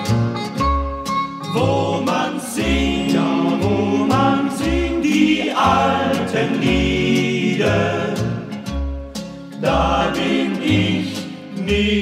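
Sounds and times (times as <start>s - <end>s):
band with low bass notes: 0.0s - 12.0s
vocal group singing harmonies: 1.5s - 8.8s, 9.5s - 12.0s.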